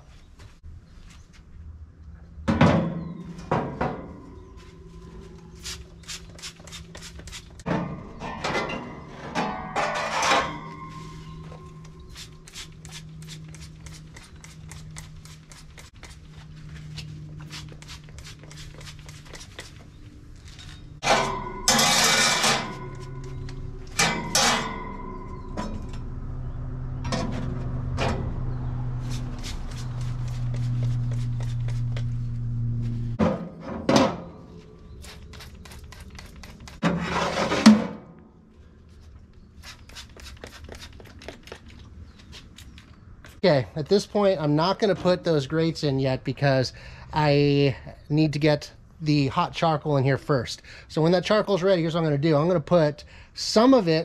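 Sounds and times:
spray bottle spritzing: 5.6s - 7.6s, 12.0s - 16.3s, 17.4s - 19.8s, 39.6s - 41.1s
metal plates clanking: 7.7s - 12.0s, 21.0s - 26.4s.

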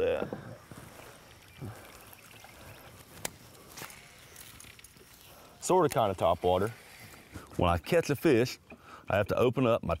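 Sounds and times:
water trickling: 0.0s - 10.0s
faint fish handling sounds: 0.3s - 7.7s.

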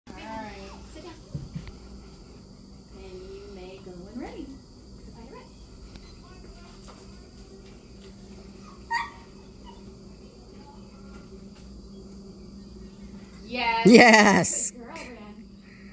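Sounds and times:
insects chirring: 0.1s - 15.9s
low steady hum: 9.6s - 15.9s
faint voice: 13.8s - 14.8s.

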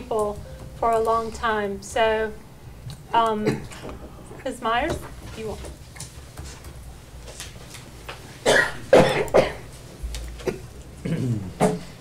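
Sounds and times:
person coughing: 3.4s - 3.9s, 8.4s - 9.7s, 10.4s - 12.0s.

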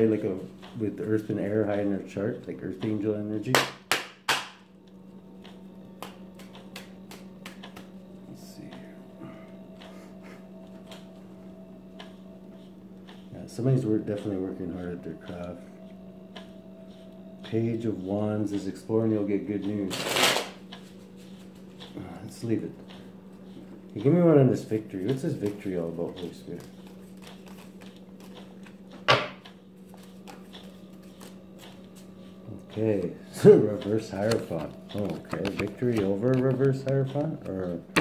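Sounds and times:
faint steady hum: 0.0s - 38.0s
cards shuffling rustle: 19.9s - 21.4s, 26.5s - 28.8s, 29.8s - 32.2s, 34.1s - 37.4s.

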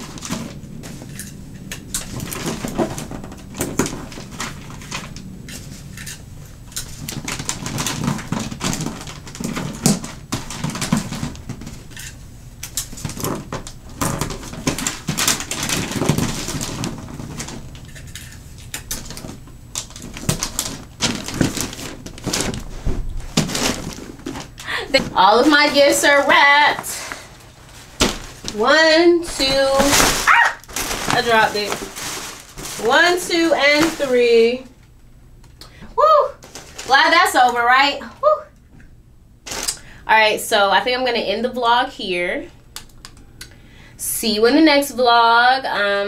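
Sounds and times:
wrapping paper crinkling: 0.0s - 34.8s, 36.4s - 37.4s, 39.4s - 40.0s.

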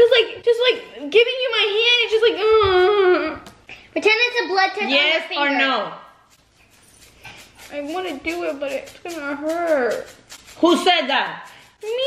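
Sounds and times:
girl speaking in whining voice: 0.0s - 6.1s, 7.7s - 12.0s.

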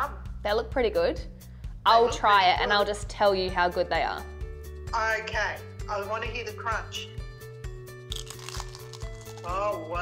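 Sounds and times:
background music with steady beat: 0.0s - 10.0s
crunching bite into spring roll: 8.1s - 9.5s.

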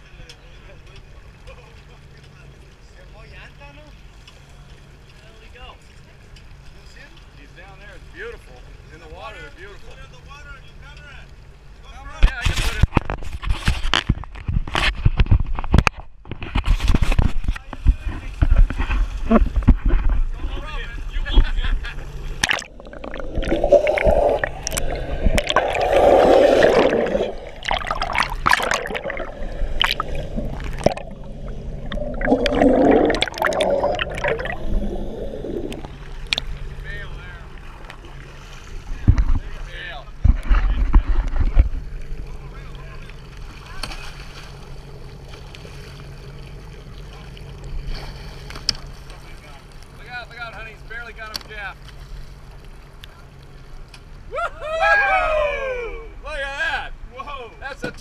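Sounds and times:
muffled underwater rushing: 21.4s - 49.4s
seawater splashing and gurgling: 22.0s - 50.0s.

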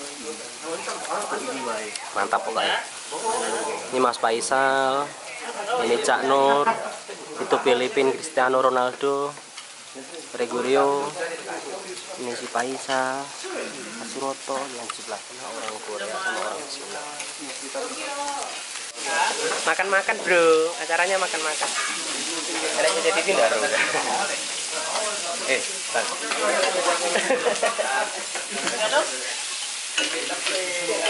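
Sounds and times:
food sizzling in pans: 0.0s - 31.0s
faint chatter: 21.2s - 31.0s.

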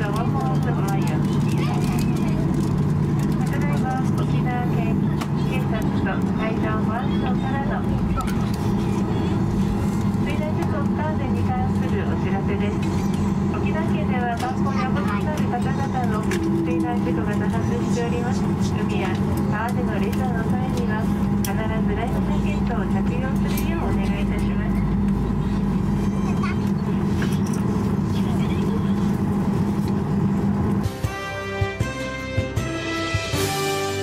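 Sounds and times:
jet engines droning: 0.0s - 30.9s
public address announcement: 0.0s - 30.9s.

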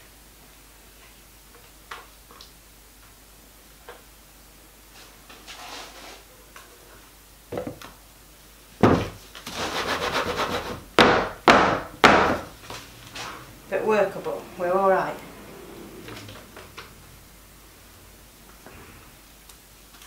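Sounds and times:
wooden mould knocking on worktop: 8.8s - 9.2s.

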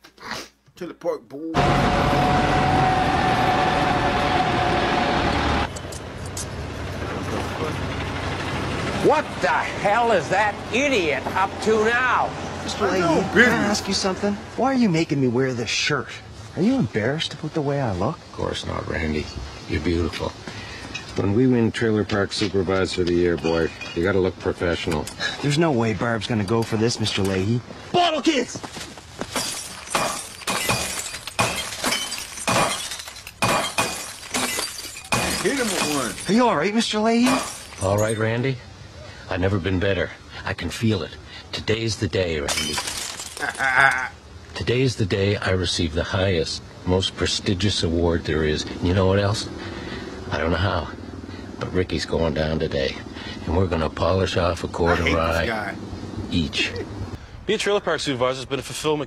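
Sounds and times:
diesel engine running with whine: 1.6s - 11.6s
glass bottles smashing: 23.3s - 24.3s, 29.2s - 38.4s, 42.4s - 44.0s.

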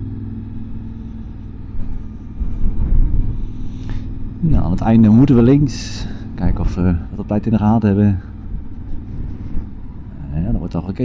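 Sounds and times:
motorcycle engine rumble: 0.0s - 11.0s.

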